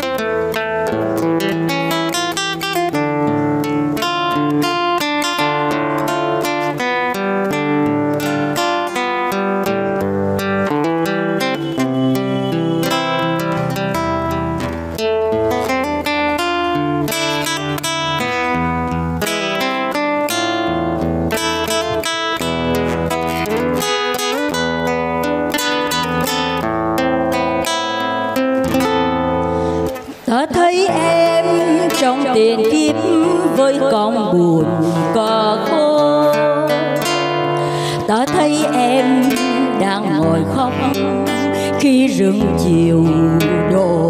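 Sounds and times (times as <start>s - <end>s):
acoustic guitar picked melody: 0.0s - 44.0s.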